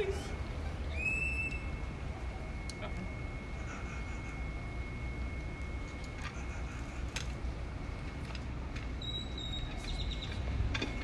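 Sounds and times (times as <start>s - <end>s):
high-pitched whistled call: 0.2s - 2.0s, 9.0s - 10.4s.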